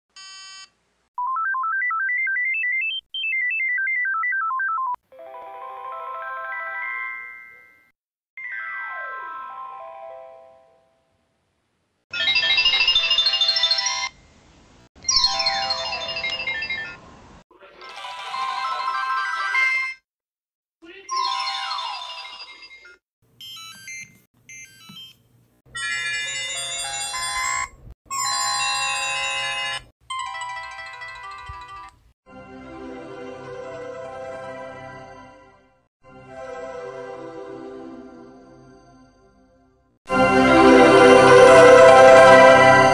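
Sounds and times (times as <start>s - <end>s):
phone startup melody: 3.4s - 10.8s, 40.1s - 42.9s.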